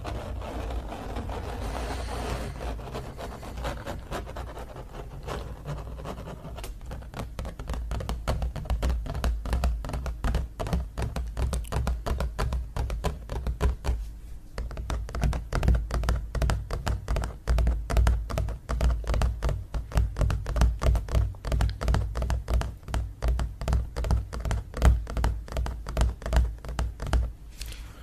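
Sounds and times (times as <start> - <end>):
fingertips tapping on canvas: 0.0 - 27.3.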